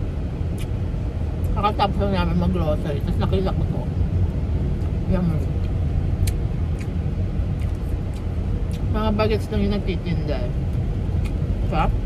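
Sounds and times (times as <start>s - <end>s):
car interior engine and road noise: 0.0s - 12.0s.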